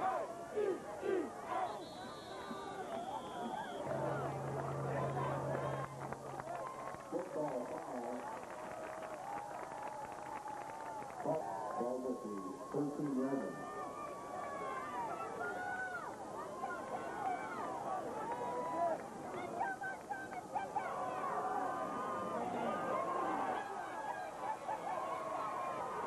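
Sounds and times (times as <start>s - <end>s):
crowd shouting: 0.0s - 7.1s, 13.1s - 19.8s, 20.4s - 26.0s.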